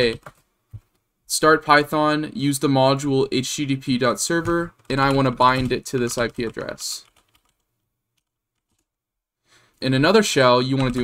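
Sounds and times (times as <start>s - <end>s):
faint keyboard typing: 0.0s - 1.0s, 4.0s - 8.9s, 10.7s - 11.0s.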